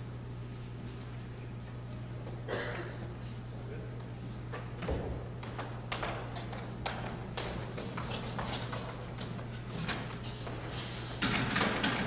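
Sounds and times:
steady low hum: 0.0 - 12.0
wheeled chair rolling: 5.4 - 12.0.

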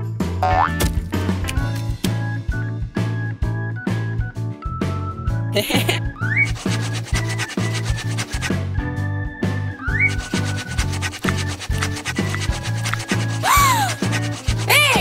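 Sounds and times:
background music with bass line: 0.0 - 13.0
pencil scribbling on paper: 5.6 - 8.5, 10.0 - 15.0.

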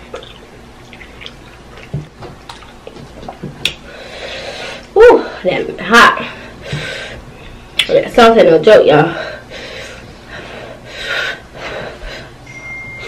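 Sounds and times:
wet chewing and lip-smacking: 0.0 - 3.8.

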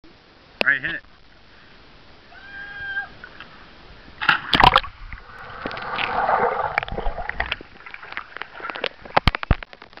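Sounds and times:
loud splash into pool: 4.2 - 7.4
water sloshing and dripping: 4.2 - 10.0
muffled underwater bubbling: 4.6 - 8.2.

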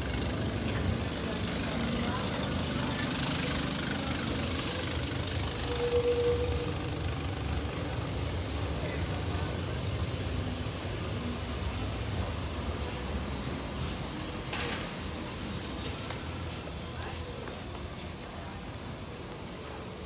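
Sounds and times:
tram rumbling on track: 0.0 - 20.0.

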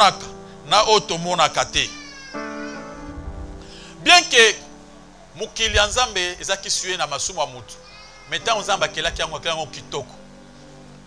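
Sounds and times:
man preaching: 0.0 - 2.2, 3.8 - 4.7, 5.4 - 10.2
background music chords: 0.0 - 11.0.

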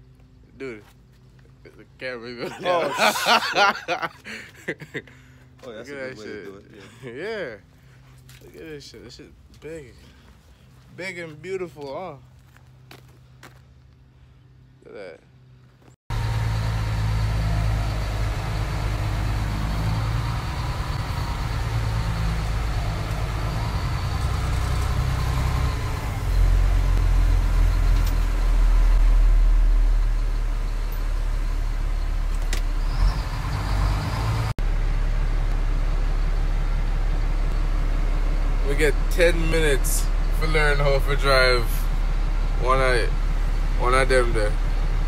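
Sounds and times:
truck engine running: 15.4 - 45.0.

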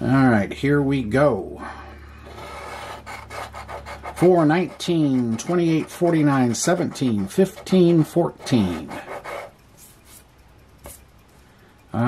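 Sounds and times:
scratching lottery ticket: 2.2 - 10.3.

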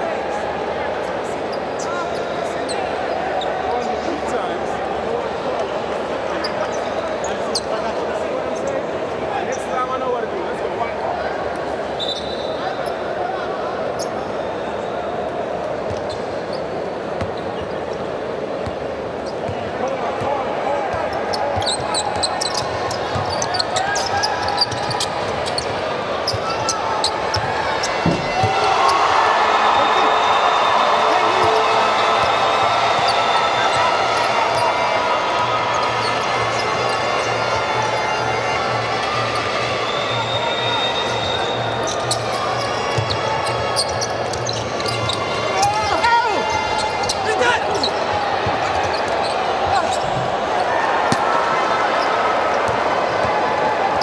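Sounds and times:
murmur of crowd voices: 0.0 - 54.0.

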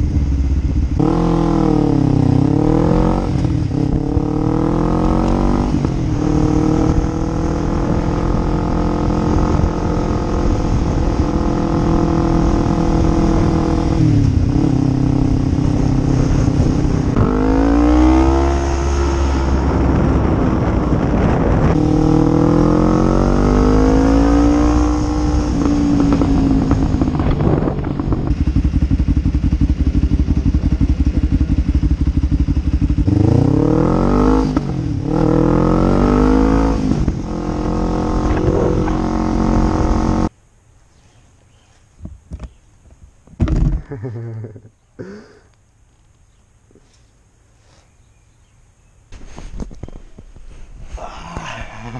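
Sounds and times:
motorcycle engine accelerating: 0.0 - 40.3
quick gear upshifts: 36.4 - 40.3.

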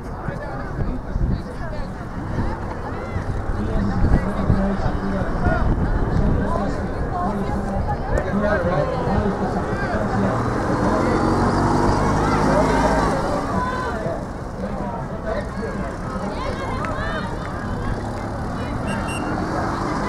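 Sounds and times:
spectators calling out: 15.3 - 20.0.

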